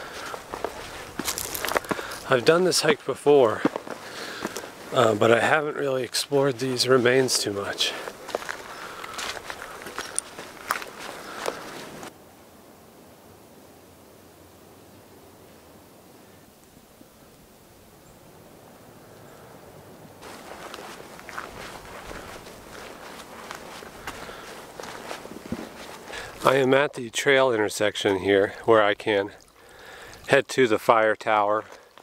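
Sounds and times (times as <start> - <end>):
footsteps on dry leaves and gravel: 0.0 - 12.1, 20.2 - 26.8.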